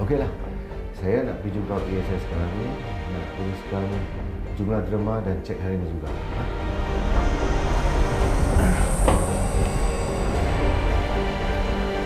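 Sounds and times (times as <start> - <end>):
high whine: 6.6 - 12.0
sharp hit: 7.0 - 11.6.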